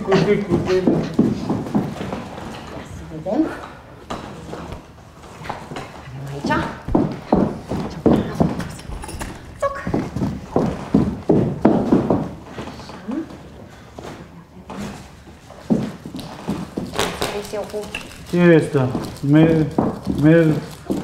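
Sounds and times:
person speaking: 0:00.0 - 0:01.8.

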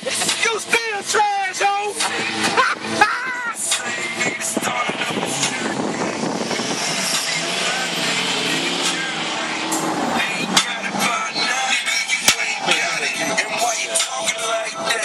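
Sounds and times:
wind and road noise: 0:00.0 - 0:15.0.

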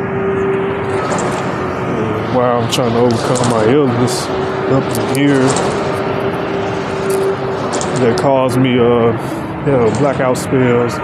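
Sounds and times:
steady hum: 0:00.0 - 0:11.0
transit vehicle running noise: 0:00.0 - 0:11.0.

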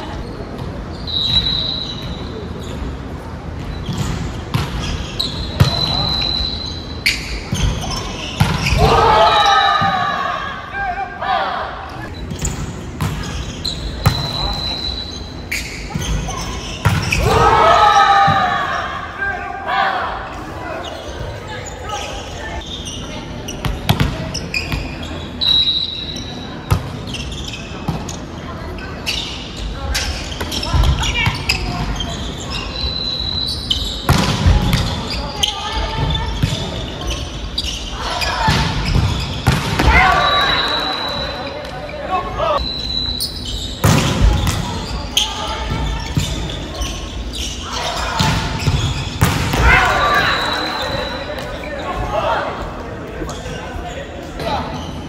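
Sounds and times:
players shouting: 0:08.6 - 0:12.1, 0:16.3 - 0:22.5, 0:39.7 - 0:42.6, 0:47.4 - 0:52.8
volleyball being hit: 0:48.2 - 0:50.2.

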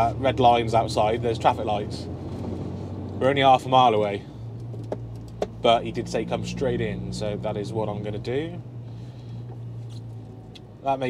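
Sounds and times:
diesel engine hum in cab: 0:00.0 - 0:11.0.

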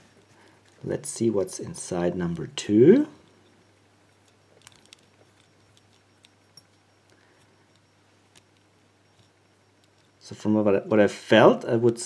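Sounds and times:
small metallic clicks: 0:03.2 - 0:11.1.

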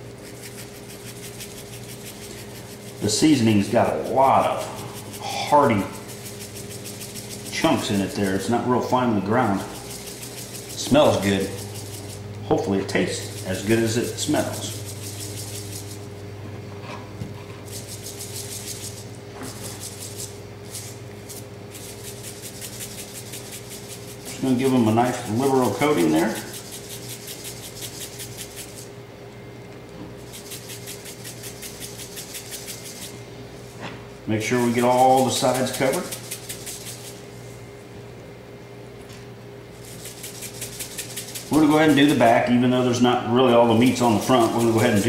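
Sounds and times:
spice shaker rattling: 0:00.0 - 0:08.7, 0:09.3 - 0:16.2, 0:17.6 - 0:29.0, 0:30.2 - 0:33.2, 0:34.6 - 0:37.3, 0:39.7 - 0:42.3, 0:43.7 - 0:45.0
steady low hum: 0:00.0 - 0:45.0.

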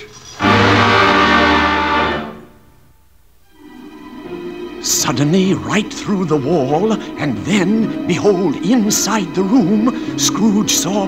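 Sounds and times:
loud orchestral chord: 0:00.4 - 0:02.8.

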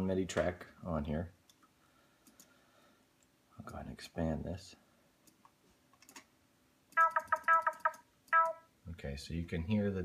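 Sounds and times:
faint mouse clicks: 0:01.5 - 0:02.6.

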